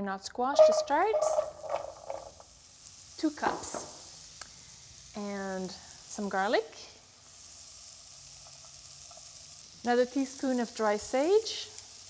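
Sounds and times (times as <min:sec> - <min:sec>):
squash sizzling in butter: 0:00.6 - 0:12.0.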